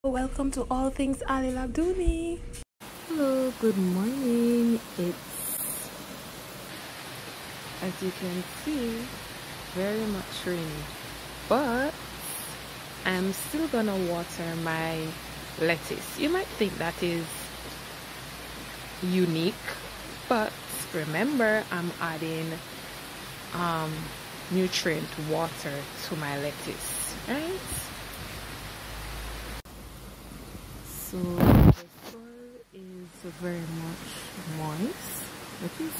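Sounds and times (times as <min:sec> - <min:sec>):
steady rain falling: 0:02.8 - 0:35.9.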